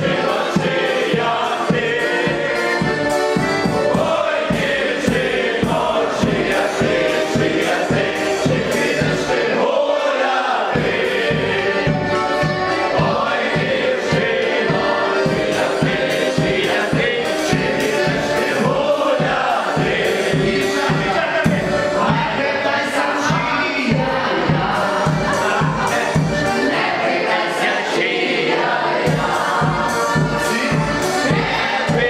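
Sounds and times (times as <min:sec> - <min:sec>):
accordion: 0:00.0 - 0:32.0
steady beat: 0:00.0 - 0:32.0
voices singing along: 0:00.0 - 0:32.0.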